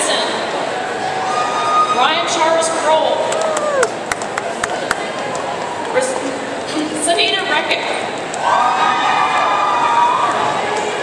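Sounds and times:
crowd hubbub: 0.0 - 11.0
high-pitched cheer: 8.4 - 10.7.

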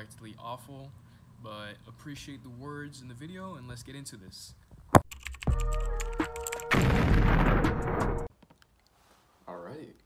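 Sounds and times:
deep bass hit: 6.7 - 8.3
loud explosion effect: 6.7 - 8.3.

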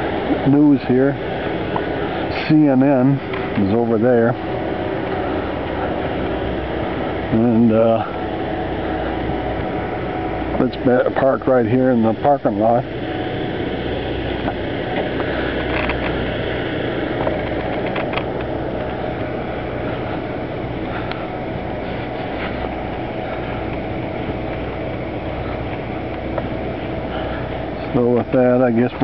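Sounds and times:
car engine hum: 0.0 - 29.0
road noise inside car: 0.0 - 29.0.

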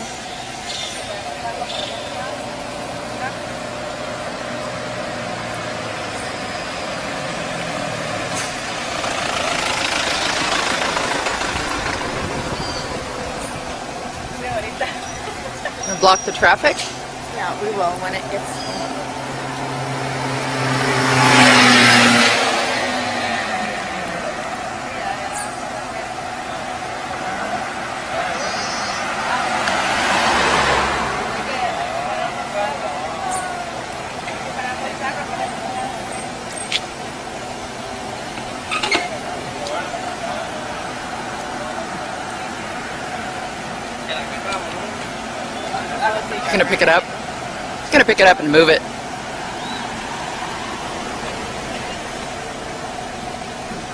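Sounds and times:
street background noise: 0.0 - 53.9
vehicle driving past: 2.2 - 36.7, 39.2 - 53.9.

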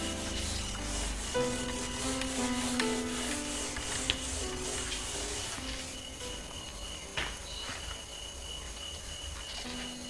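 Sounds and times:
whiteboard eraser rubbing: 0.0 - 7.4
background music with held notes: 0.0 - 7.7.

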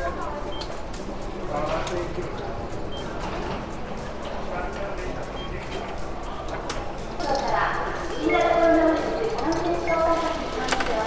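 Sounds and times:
background music: 0.0 - 11.0
ticket machine beeps: 0.0 - 11.0.

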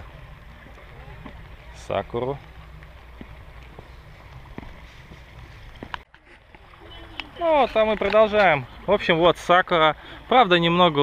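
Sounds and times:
steady low rumble: 0.0 - 6.1.

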